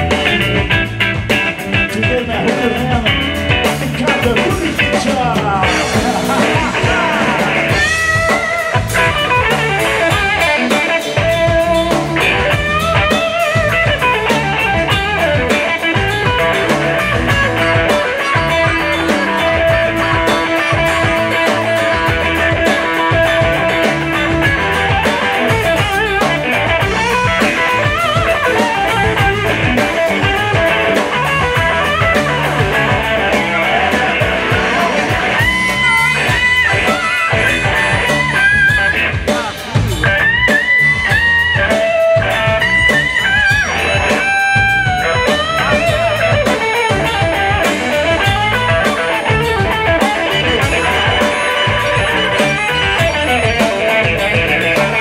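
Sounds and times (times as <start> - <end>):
harmonica bending phrases: 0.0 - 55.0
live blues band: 0.0 - 55.0.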